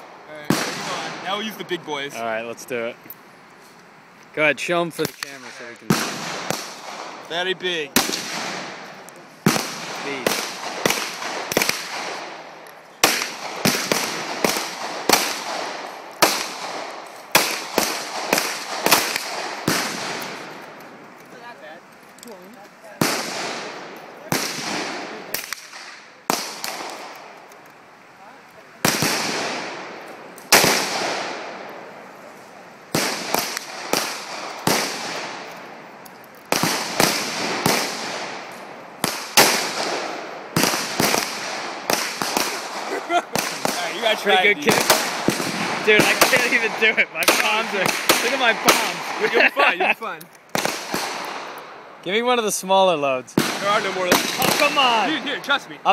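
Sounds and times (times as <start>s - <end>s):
gunshots echoing: 0.0s - 1.7s, 5.0s - 20.7s, 23.0s - 27.4s, 28.8s - 32.0s, 32.8s - 35.9s, 36.5s - 49.7s, 50.5s - 51.9s, 53.4s - 55.7s.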